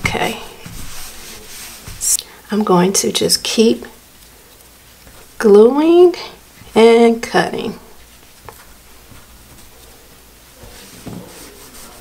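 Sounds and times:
denim rubbing and rustling: 0.0 - 2.2, 7.8 - 12.0.

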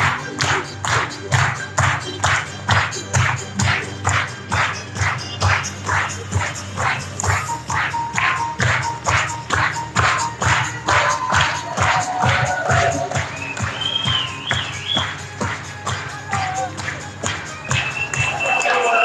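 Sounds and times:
live music with percussive beat: 0.0 - 19.0.

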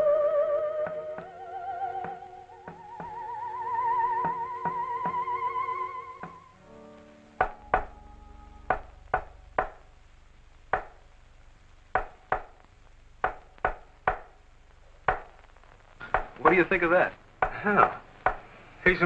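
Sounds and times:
theremin music: 0.0 - 8.8
men's voices: 16.0 - 18.1, 18.8 - 19.0.

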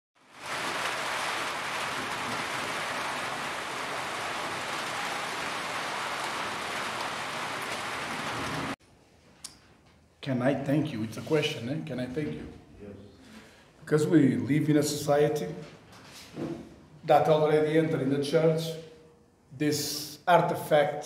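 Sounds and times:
steady rain falling: 0.2 - 8.8.

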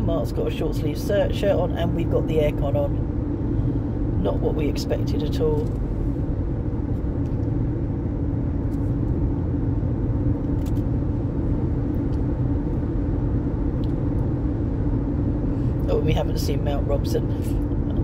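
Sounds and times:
car engine rumble: 0.0 - 18.0.

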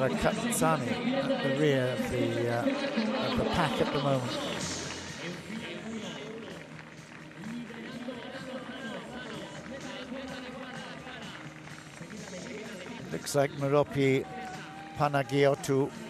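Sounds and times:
faint music: 0.0 - 16.0.

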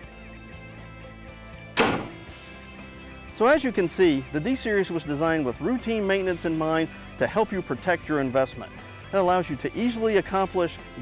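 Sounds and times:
background music: 0.0 - 11.0
metal door slamming: 1.8 - 2.4.

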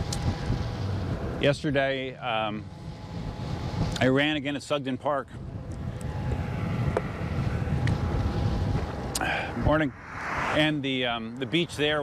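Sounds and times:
wind buffeting microphone: 0.0 - 1.4, 5.3 - 12.0.

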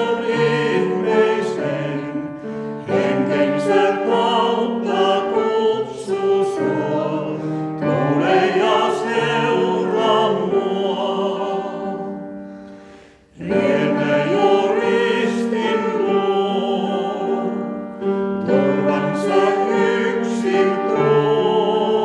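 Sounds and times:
piano accompaniment: 0.0 - 22.0
vocal quartet singing in harmony: 0.0 - 22.0.

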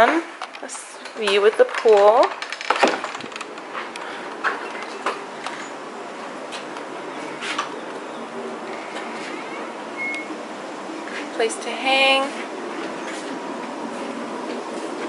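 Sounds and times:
outdoor ambient hiss: 0.0 - 15.0.

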